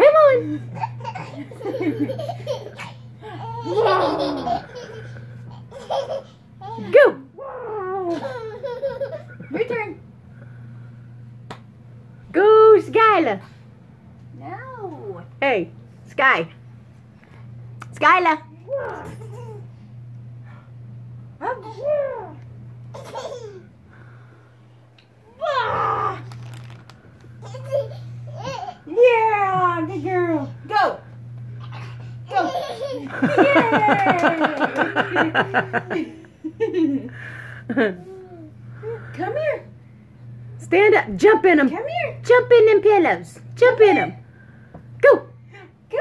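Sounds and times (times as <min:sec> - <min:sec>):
steady low hum: 0:00.0 - 0:46.0
people laughing: 0:00.8 - 0:05.3, 0:32.4 - 0:38.1
baby laughing: 0:00.8 - 0:06.8, 0:08.1 - 0:09.4, 0:22.9 - 0:23.7, 0:27.4 - 0:28.8, 0:31.6 - 0:33.4.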